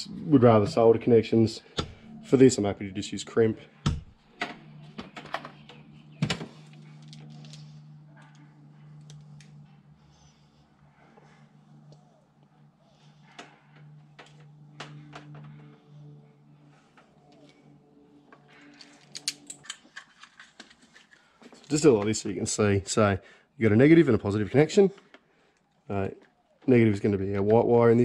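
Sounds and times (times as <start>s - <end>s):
steady low hum: 0.0s - 28.0s
wire handling noises: 3.8s - 10.0s, 13.1s - 22.2s.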